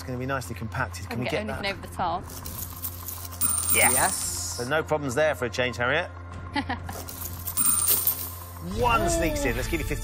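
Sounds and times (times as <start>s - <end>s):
steady background music: 0.0s - 10.0s
coins clinking in coin pusher: 2.3s - 4.6s, 6.9s - 8.6s.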